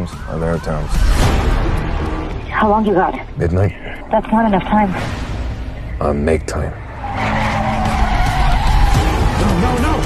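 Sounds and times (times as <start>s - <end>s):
car tyres squealing: 6.9s - 10.0s.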